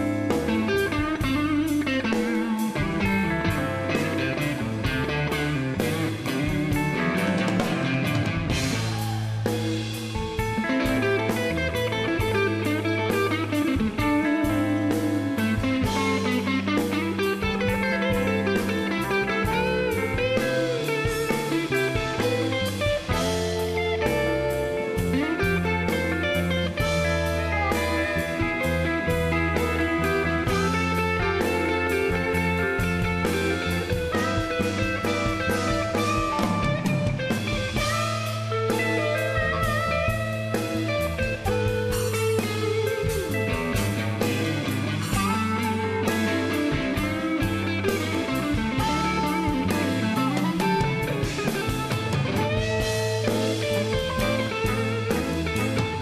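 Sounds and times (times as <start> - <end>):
electric blues band playing: 0.0 - 56.0
amplified harmonica: 15.4 - 56.0.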